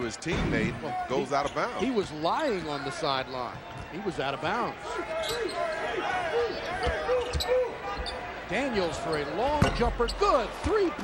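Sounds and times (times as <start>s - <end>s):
players or crowd calling: 0.0s - 11.0s.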